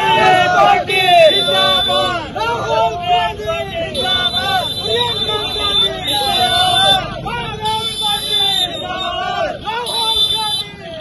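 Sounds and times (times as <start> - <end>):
protesters shouting slogans: 0.0 - 11.0.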